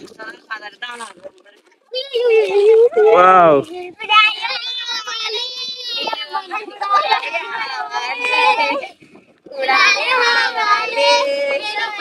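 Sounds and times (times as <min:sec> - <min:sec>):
children singing together: 0:04.4 - 0:12.0.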